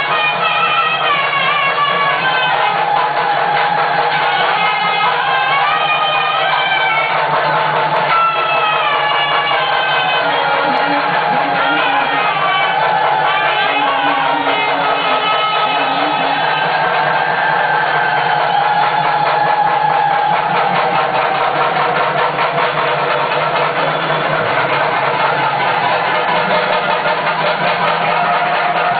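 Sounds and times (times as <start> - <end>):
dense rapid beat: 1.2 - 28.9.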